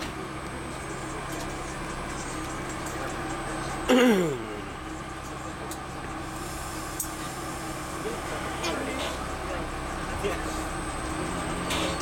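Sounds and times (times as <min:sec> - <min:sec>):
low hum in subway car: 0:00.0 - 0:12.0.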